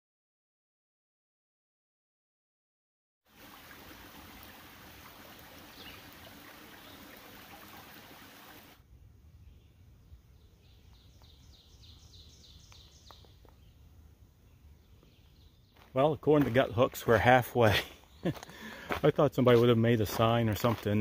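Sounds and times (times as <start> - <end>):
creek running over rocks: 3.3 - 8.8.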